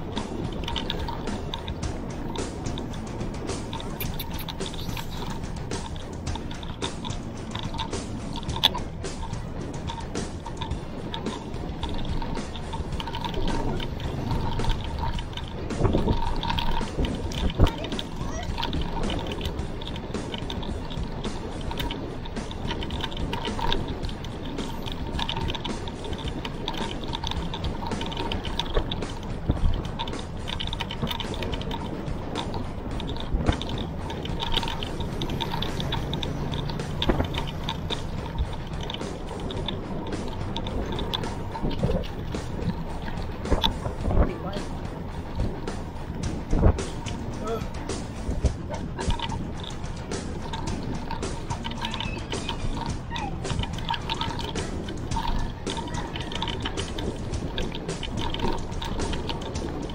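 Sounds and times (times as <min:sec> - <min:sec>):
road rattle: 0:00.0 - 0:59.9
wind buffeting camera: 0:00.0 - 0:59.9.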